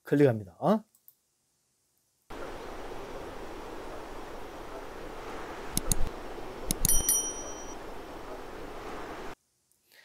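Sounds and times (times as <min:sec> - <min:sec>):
steady hiss: 0:01.3 - 0:10.0
mouse clicks: 0:05.7 - 0:06.1
short high bell ding: 0:06.9 - 0:07.8.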